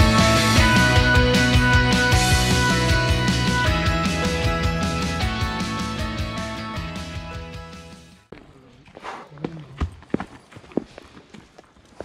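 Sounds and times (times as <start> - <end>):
background music: 0.0 - 8.3
footsteps on dry dirt path: 8.3 - 12.0.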